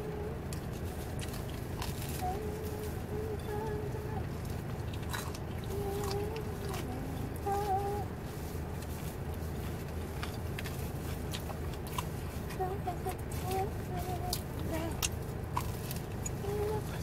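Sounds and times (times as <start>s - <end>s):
steady low rumble: 0.0s - 17.0s
chewing with mouth clicks: 0.4s - 3.4s, 4.2s - 7.6s, 8.8s - 17.0s.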